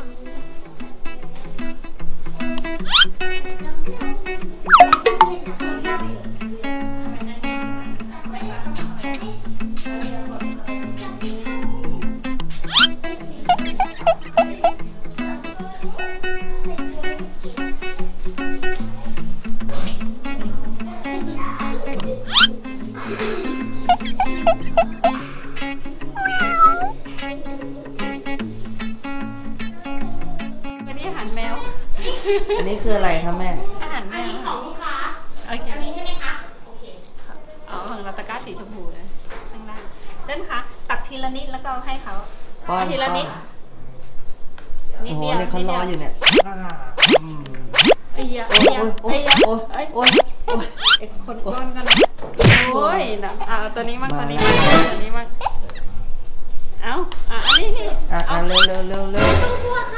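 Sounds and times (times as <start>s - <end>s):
cat meowing: 2.8s - 3.1s, 12.7s - 14.8s, 22.3s - 22.6s, 23.9s - 25.2s, 26.1s - 27.0s
cartoon boing sound effect: 4.7s - 5.4s, 12.7s - 12.9s, 13.5s - 14.8s, 22.3s - 22.5s, 23.9s - 25.2s, 46.2s - 46.4s, 47.0s - 51.0s, 51.9s - 52.6s, 57.4s - 57.6s
background music with plucked beat: 4.7s - 8.0s, 8.8s - 15.7s, 21.8s - 25.3s.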